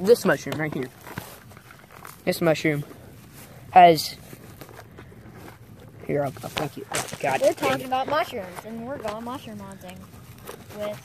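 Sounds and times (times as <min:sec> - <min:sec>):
faint outdoor background noise: 0:00.0 - 0:11.0
light ticks and rustles: 0:00.0 - 0:11.0.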